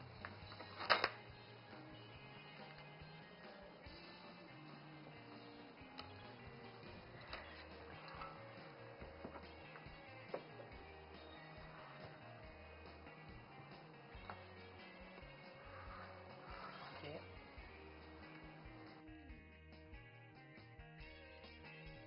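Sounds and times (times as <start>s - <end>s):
soft background music: 0.0s - 22.0s.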